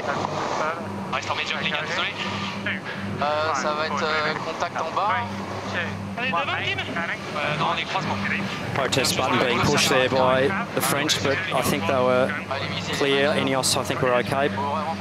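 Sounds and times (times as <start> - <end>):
crew voices over comms: 0.0 - 15.0
low steady hum: 0.0 - 15.0.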